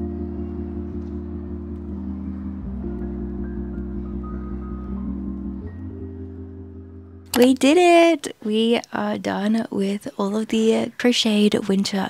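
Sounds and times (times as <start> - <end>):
soft instrumental music: 0.0 - 7.6.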